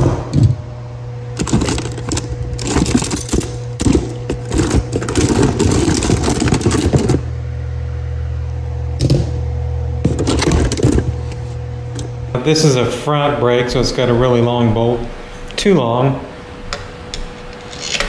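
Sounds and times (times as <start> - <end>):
steady low hum: 0.0 - 18.0
metal brakes rattling in a box: 1.4 - 7.2, 10.0 - 11.2.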